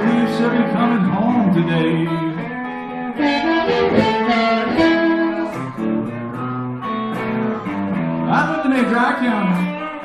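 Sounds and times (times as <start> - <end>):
amplified blues harmonica: 0.0 - 10.0
guitar accompaniment: 0.0 - 10.0.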